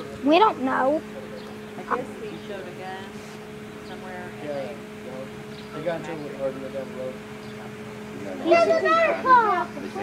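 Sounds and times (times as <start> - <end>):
steady low hum: 0.0 - 10.0
child calling out: 8.4 - 9.8.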